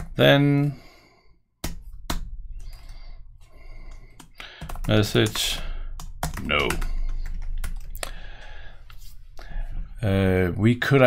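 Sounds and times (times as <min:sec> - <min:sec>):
computer keyboard typing: 0:03.7 - 0:08.5.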